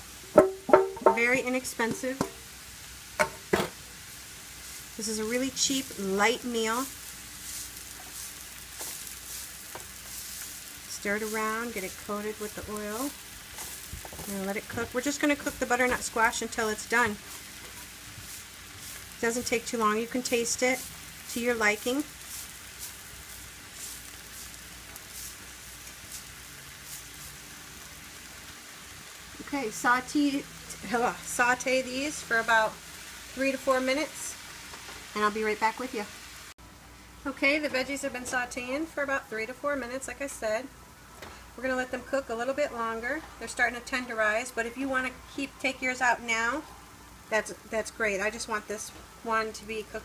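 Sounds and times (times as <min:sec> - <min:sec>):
squash sizzling in hot oil: 0:00.0 - 0:50.0
kitchenware knocks: 0:00.4 - 0:01.3.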